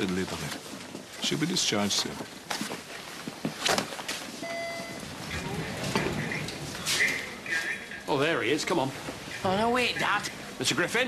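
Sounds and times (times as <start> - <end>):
short electronic beep: 4.4 - 5.0.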